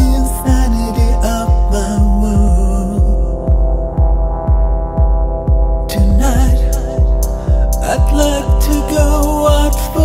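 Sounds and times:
deep kick drum: 0.0 - 10.0
sustained synth chords: 0.0 - 10.0.

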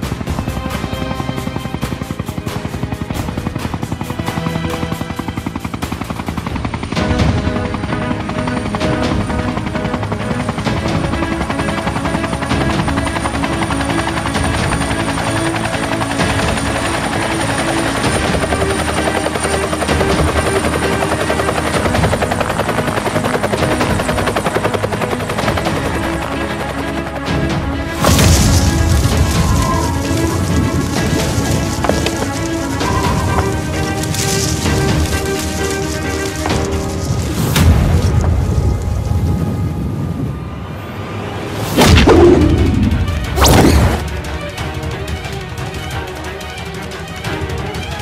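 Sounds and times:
helicopter rotor chopping: 0.0 - 39.1, 41.6 - 48.0
film score music: 0.0 - 48.0.

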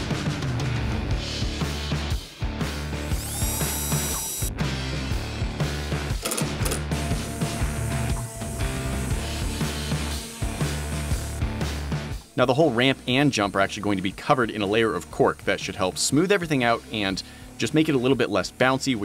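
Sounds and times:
background music: 0.0 - 19.0
cordless drill driving screws: 3.1 - 4.6
electric palm sander: 3.2 - 4.5, 7.0 - 12.4, 14.8 - 19.0.

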